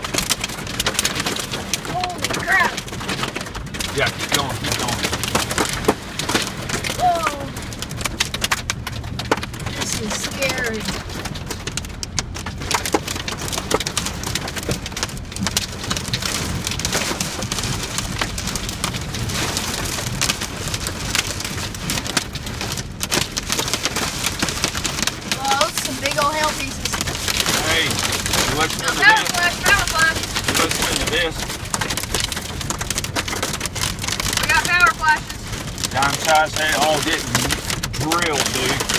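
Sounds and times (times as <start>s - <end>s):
rain and hail pelting truck roof: 0.0s - 38.9s.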